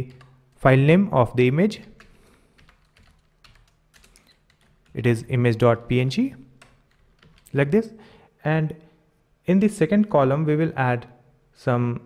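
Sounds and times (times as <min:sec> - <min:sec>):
computer keyboard keystrokes: 0:00.1 - 0:00.4, 0:01.9 - 0:05.0, 0:06.6 - 0:07.6.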